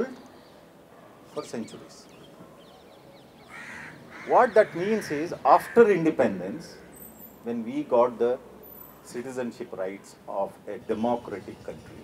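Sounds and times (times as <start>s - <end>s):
crow cawing: 3.4s - 6.0s.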